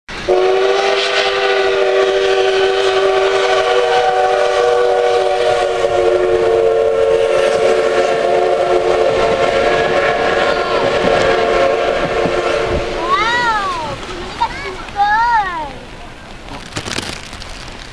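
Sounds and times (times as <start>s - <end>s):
steam locomotive whistle: 0.1s - 13.6s
train coaches rumbling past: 0.1s - 17.9s.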